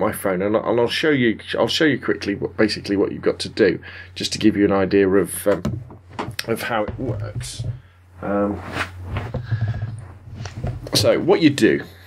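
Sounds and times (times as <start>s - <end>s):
knocks scuffs and rustling: 5.6s - 7.9s.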